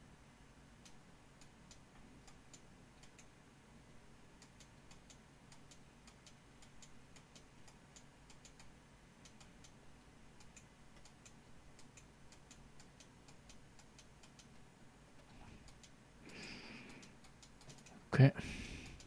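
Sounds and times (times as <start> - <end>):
low steady hum: 0.0 - 19.0
computer mouse clicks: 0.8 - 3.3, 4.4 - 9.8, 10.4 - 14.6, 15.2 - 18.0, 18.8 - 19.0.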